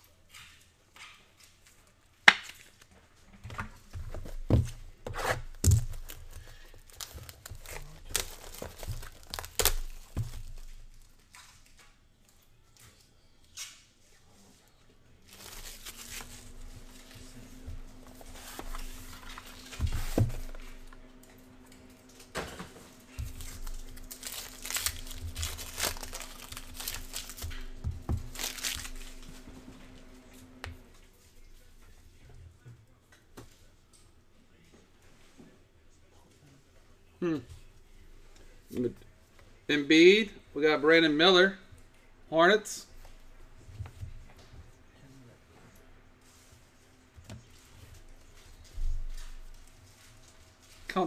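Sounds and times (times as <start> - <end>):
plastic wrap crinkling and tearing: 5.4 - 11.9, 15.2 - 30.6.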